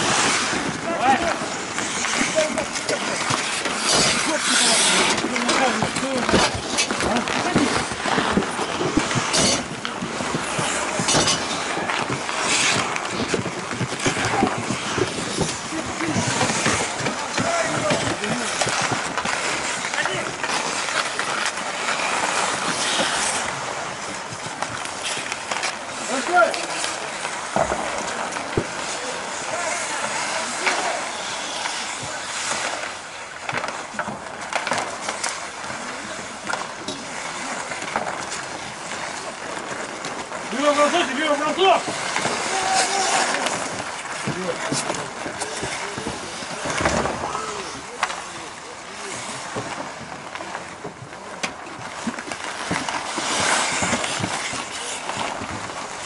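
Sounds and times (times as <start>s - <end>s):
skates scraping on ice: 0.0s - 56.0s
players shouting: 40.7s - 43.7s.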